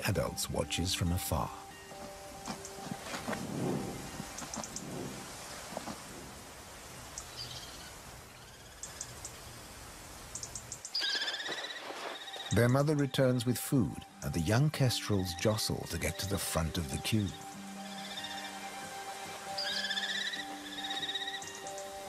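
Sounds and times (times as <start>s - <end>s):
steady outdoor hiss: 0.0s - 22.0s
faint high ticks: 4.3s - 4.9s, 8.8s - 9.4s, 10.3s - 11.0s
kestrel calls: 19.5s - 21.9s.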